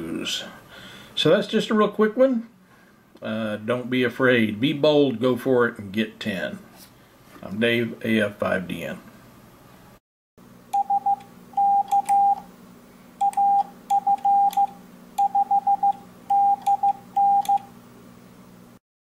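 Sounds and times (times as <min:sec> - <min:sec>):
faint steady hum: 0:00.0 - 0:18.8
morse code beeping: 0:10.8 - 0:12.4, 0:13.2 - 0:17.6.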